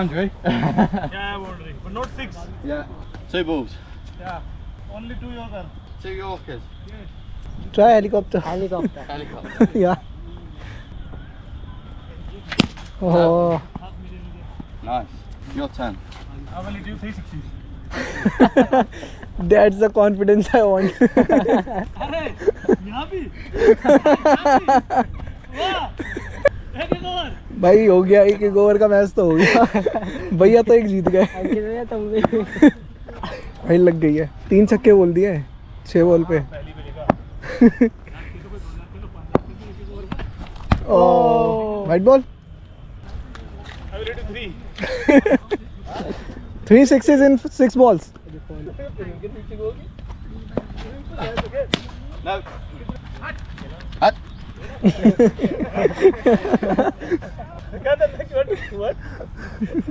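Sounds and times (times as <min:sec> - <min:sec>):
cricket bat striking ball: 0:12.5 - 0:13.0, 0:39.3 - 0:40.9, 0:51.3 - 0:52.0.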